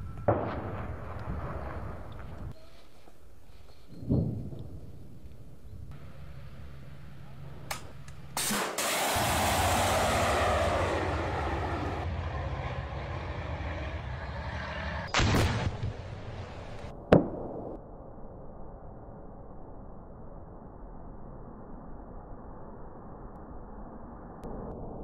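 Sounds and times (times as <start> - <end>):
missile launch crack: 8.4 - 12.1, 15.1 - 17.5
rocket motor rushing: 8.4 - 14.5
explosion blasts: 8.4 - 17.7.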